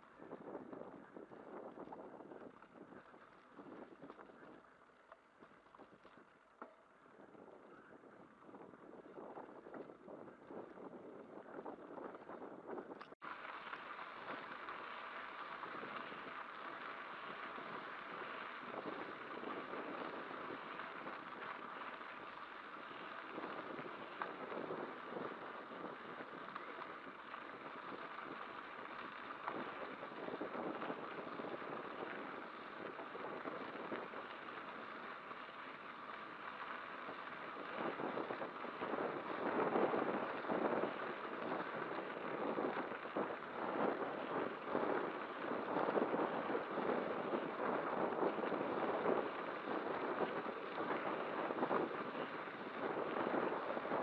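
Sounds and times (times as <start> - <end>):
tyres on gravel: 0.0 - 54.0
wind on microphone: 0.0 - 54.0.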